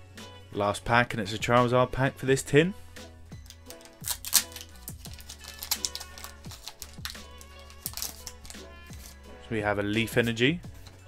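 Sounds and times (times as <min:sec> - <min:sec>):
background music: 0:00.0 - 0:11.0
foil wrapper tearing and crinkling: 0:03.4 - 0:09.2.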